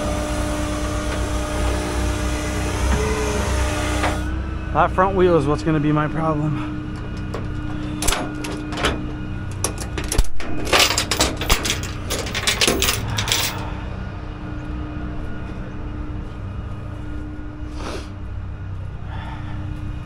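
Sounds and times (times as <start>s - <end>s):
engine idling hum: 0.0s - 20.0s
sharp metallic clicks and clatter: 7.0s - 13.6s.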